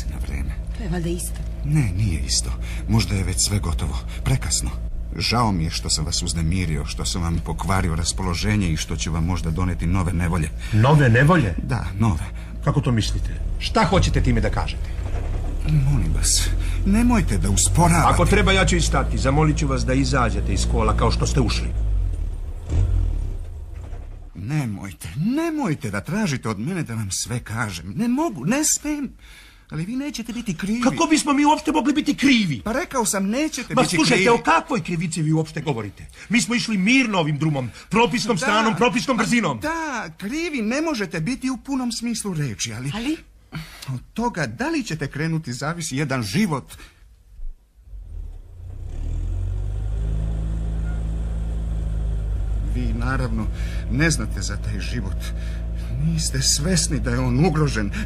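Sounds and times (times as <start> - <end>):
car engine and road rumble: 0.0 - 24.9, 47.2 - 58.0.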